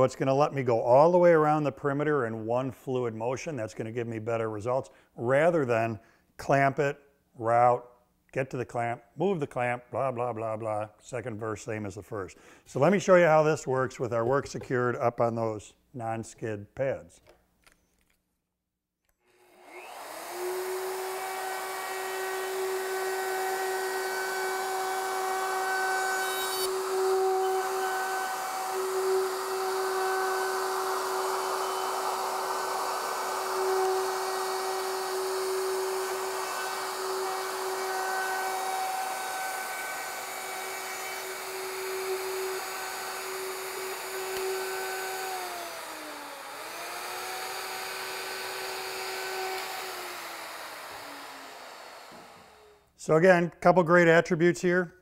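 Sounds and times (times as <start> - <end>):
router bit cutting wood: 19.3 - 52.9
router high whine: 19.3 - 52.9.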